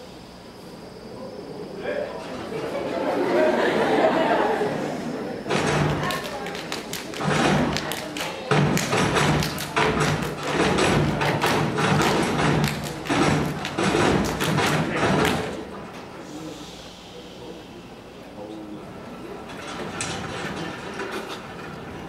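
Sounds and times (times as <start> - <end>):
stomping and clapping in unison: 5.5 - 15.6.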